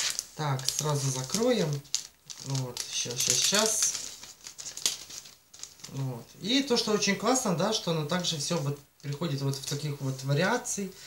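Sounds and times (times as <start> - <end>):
plastic packet crinkling: 0.0 - 7.1.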